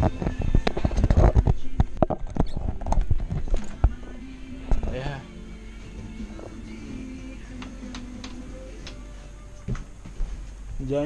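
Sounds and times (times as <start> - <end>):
phone handling noise: 0.0 - 4.0.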